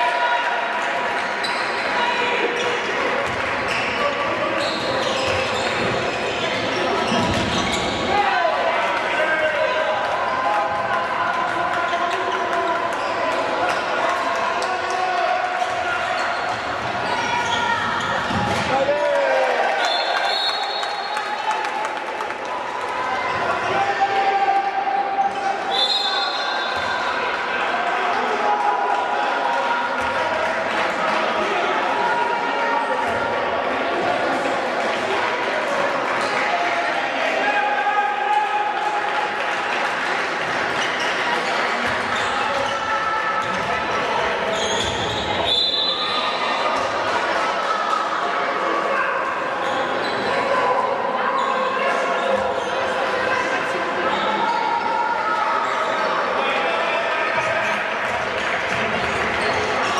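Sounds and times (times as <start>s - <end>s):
hubbub of voices: 0.0s - 59.9s
ball bouncing on court floor: 7.1s - 7.9s
referee whistle blasts: 19.8s - 21.2s, 25.7s - 26.8s, 45.1s - 46.2s.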